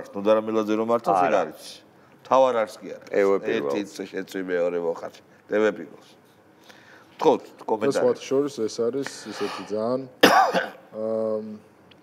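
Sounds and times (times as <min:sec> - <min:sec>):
man coughing: 0:09.4 - 0:10.9.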